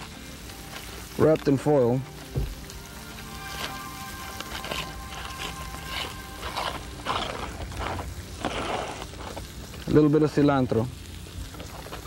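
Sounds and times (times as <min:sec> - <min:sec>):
soft background music: 0:00.0 - 0:08.8
foil packet crinkling: 0:00.0 - 0:12.0.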